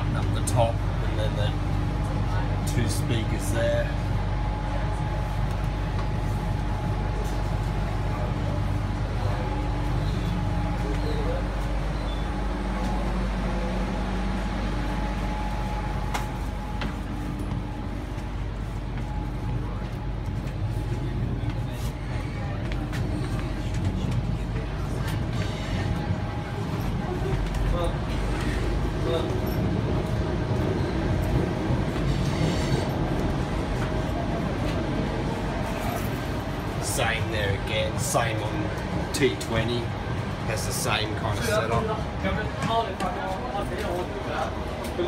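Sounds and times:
constant hum: 0.0 - 45.0
train running rumble: 0.0 - 45.0.

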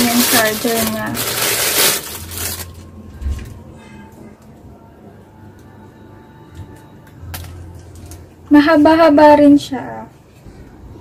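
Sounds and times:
plastic bag crinkling: 0.0 - 3.0.

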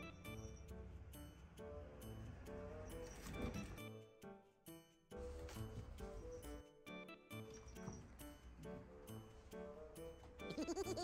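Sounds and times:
person laughing: 10.5 - 11.0.

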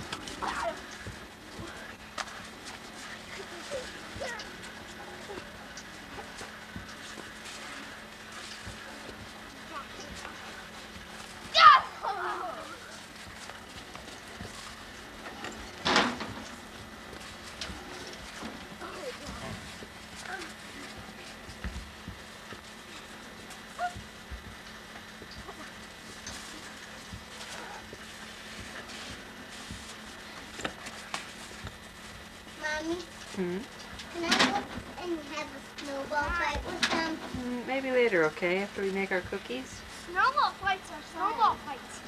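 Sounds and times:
children shouting and calling: 11.5 - 12.9.

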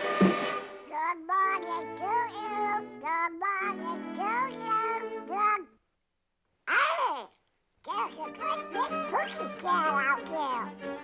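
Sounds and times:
orchestral music: 0.0 - 0.8.

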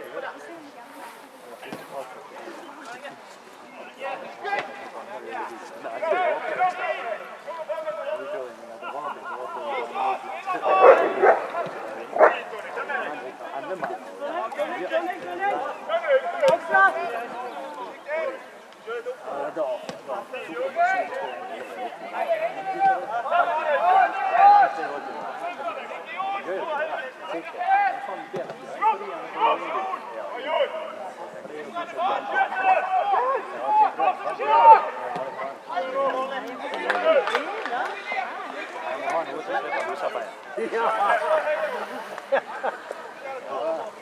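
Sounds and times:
men calling out and talking: 0.0 - 44.0.

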